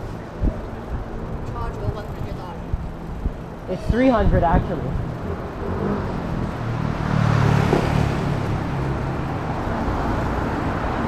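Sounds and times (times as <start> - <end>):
road and wind rumble: 0.0 - 11.0.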